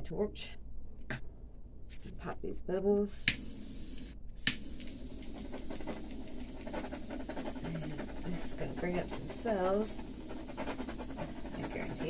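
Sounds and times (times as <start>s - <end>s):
butane torch hissing: 3.1s - 12.0s.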